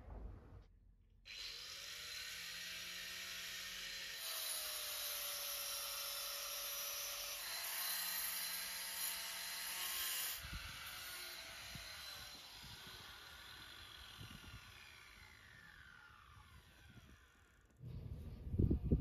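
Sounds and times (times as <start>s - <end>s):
angle grinder cutting masonry: 1.3s - 17.8s.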